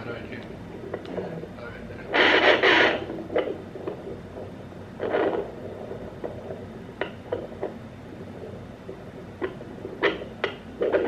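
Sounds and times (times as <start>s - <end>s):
scratchy static from speaker: 0.0s - 11.0s.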